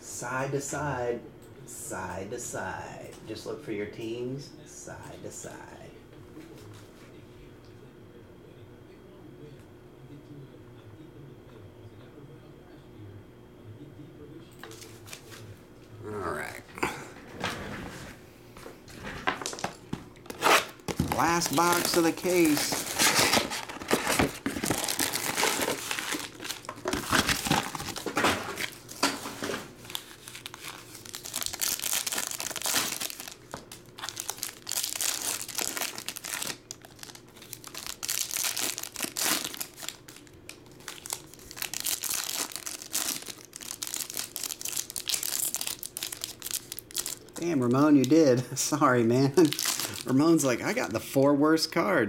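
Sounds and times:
foil wrappers tearing and crinkling: 20.3s - 48.2s, 49.3s - 50.5s.

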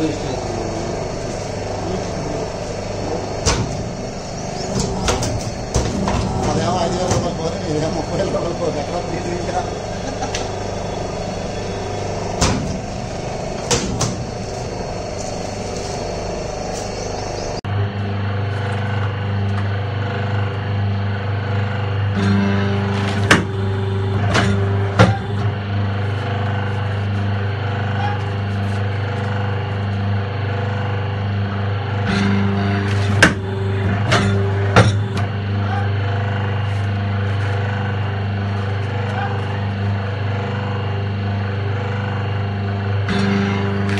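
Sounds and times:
low machine hum: 0.0s - 43.9s
machine motor hum: 0.0s - 43.9s
press dies clicking and clanking: 1.1s - 17.1s.

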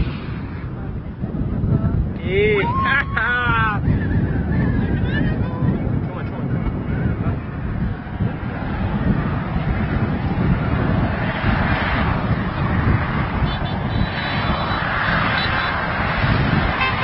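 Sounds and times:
traffic noise: 0.0s - 17.0s
vehicle horns: 13.4s - 15.9s, 16.6s - 17.0s.

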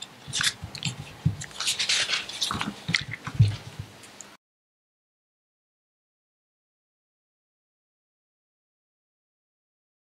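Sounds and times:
paper rustling: 0.3s - 3.8s.

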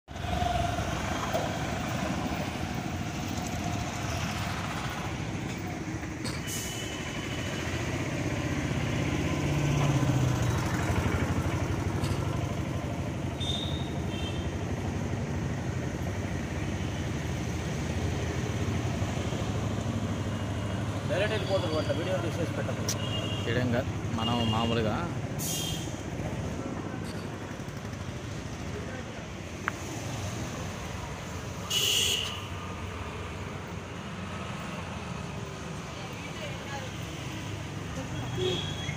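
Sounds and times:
motorbikes and scooters rumbling: 0.1s - 38.9s.

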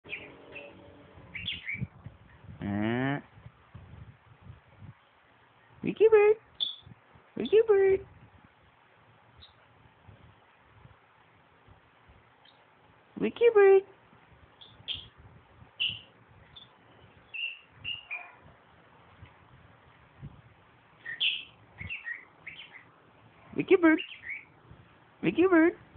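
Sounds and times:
lovebird chirping: 0.0s - 2.5s, 6.6s - 7.5s, 9.4s - 9.6s, 14.6s - 15.2s, 15.8s - 18.5s, 21.0s - 23.0s, 23.7s - 24.6s.

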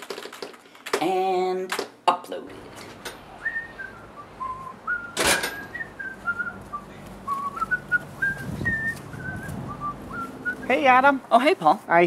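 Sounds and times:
person whistling a tune: 3.4s - 10.7s.

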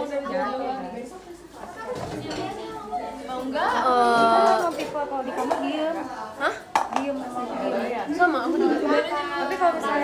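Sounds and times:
young women talking: 0.0s - 10.0s.

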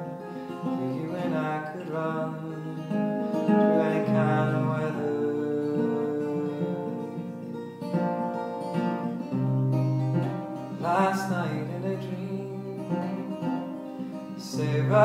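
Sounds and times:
acoustic guitar ballad: 0.0s - 15.0s
man singing: 0.3s - 7.6s, 10.7s - 15.0s.

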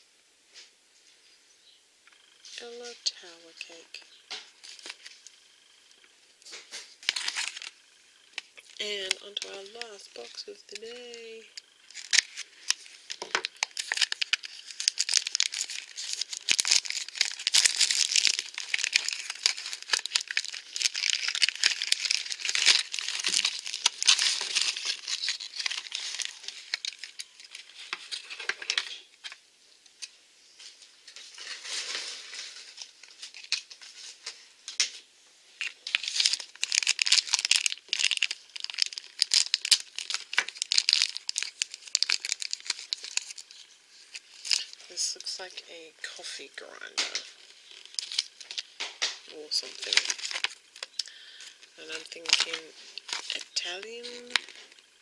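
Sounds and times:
plastic packaging crinkling and tearing: 2.2s - 29.4s, 30.0s - 35.0s, 35.6s - 45.6s, 46.5s - 55.0s.

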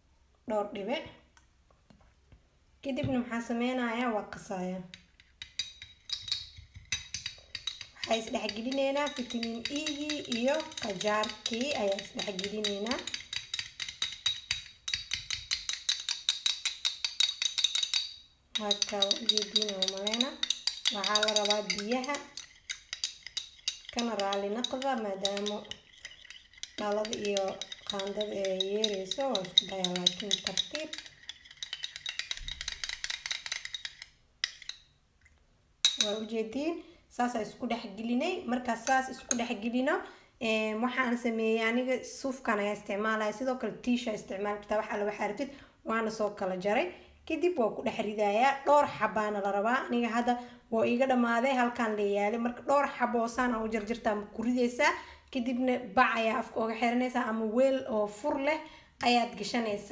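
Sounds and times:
metal spoon clinking glass bowl: 4.9s - 34.9s, 35.8s - 36.3s, 38.8s - 39.6s.

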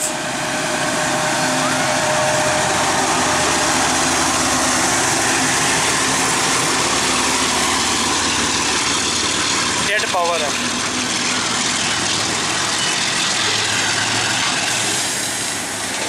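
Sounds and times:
diesel locomotives passing: 0.0s - 16.0s
train wheels on rails: 0.0s - 16.0s.

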